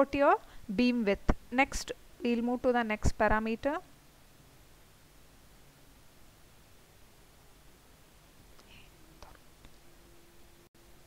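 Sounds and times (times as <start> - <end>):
background hiss: 0.0 - 11.0.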